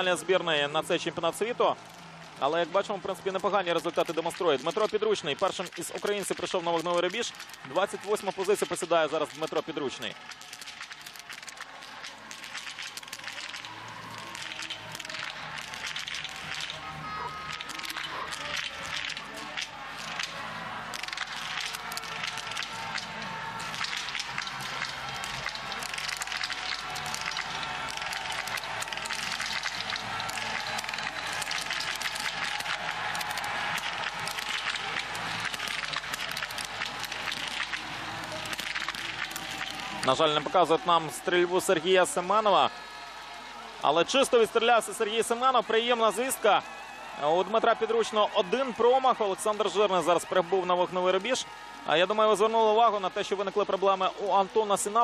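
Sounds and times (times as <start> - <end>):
crowd voices: 0.0 - 55.0
music: 0.0 - 55.0.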